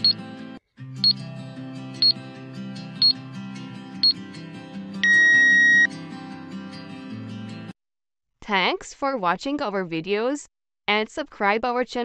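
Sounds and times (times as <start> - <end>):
background music: 0.0 - 7.7.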